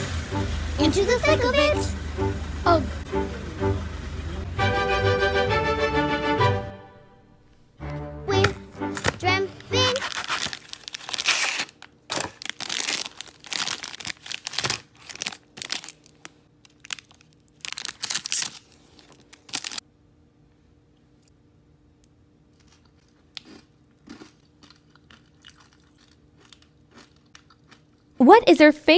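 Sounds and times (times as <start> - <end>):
plastic wrapper crinkling: 9.0 - 19.8.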